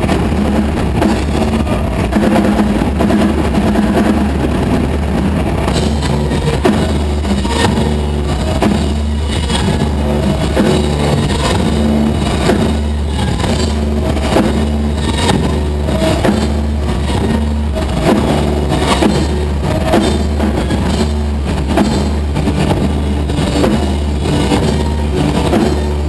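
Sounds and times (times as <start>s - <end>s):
droning electric bass guitar: 0.0s - 26.0s
drum strikes: 0.0s - 26.0s
live rock band playing: 0.0s - 26.0s.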